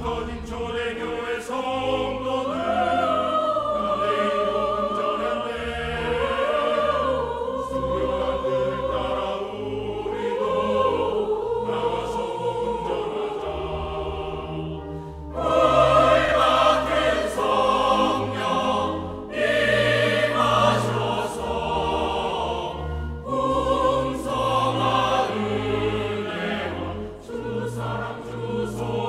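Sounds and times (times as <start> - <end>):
church choir singing hymn: 0.0 - 29.0
low instrumental accompaniment: 0.0 - 29.0.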